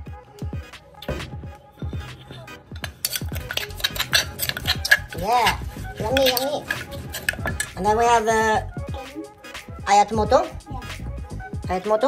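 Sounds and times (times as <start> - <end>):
background music with deep bass: 0.0 - 12.0
pestle pounding in a mortar: 2.8 - 7.8.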